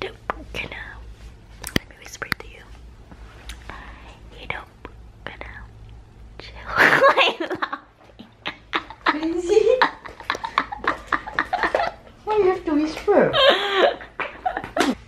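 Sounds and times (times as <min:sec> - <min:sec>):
woman whispering: 0:00.0 - 0:02.8, 0:03.6 - 0:05.8, 0:06.4 - 0:06.8
woman laughing loudly: 0:06.8 - 0:12.1, 0:13.2 - 0:15.0.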